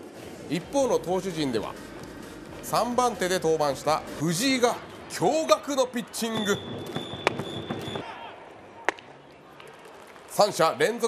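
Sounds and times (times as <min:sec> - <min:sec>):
low stadium crowd noise: 0:00.0 - 0:11.0.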